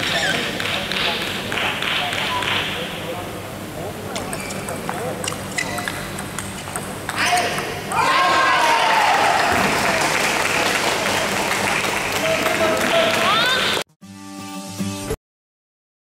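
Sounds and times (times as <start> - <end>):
table tennis ball clicking: 4.2 - 7.7
crowd cheering and shouting: 7.2 - 10.7, 12.2 - 13.8
applause: 8.6 - 13.8.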